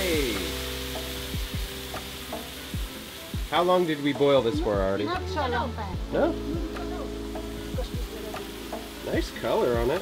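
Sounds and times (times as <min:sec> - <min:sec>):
background music: 0:00.0 - 0:10.0
food sizzling in a wok: 0:00.0 - 0:10.0.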